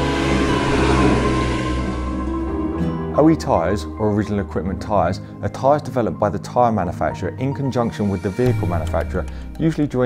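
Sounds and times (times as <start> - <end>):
car driving past: 0.0 - 3.2
intro music: 0.0 - 4.9, 8.0 - 10.0.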